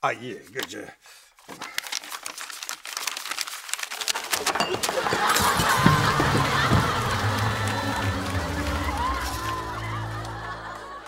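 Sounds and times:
tissue paper crumpling: 1.4s - 4.6s.

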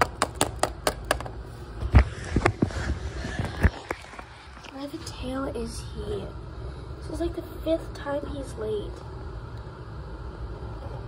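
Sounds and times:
plastic toy tapping on wood floor: 0.0s - 1.4s.

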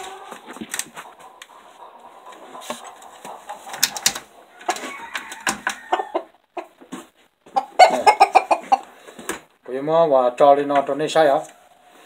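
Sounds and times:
rooster clucking: 0.0s - 9.1s.

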